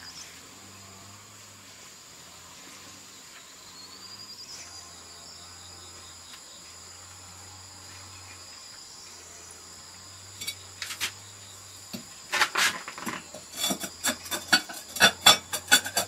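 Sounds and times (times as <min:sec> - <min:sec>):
insects chirring: 0:00.0 - 0:16.0
higher insect tone: 0:02.9 - 0:12.4.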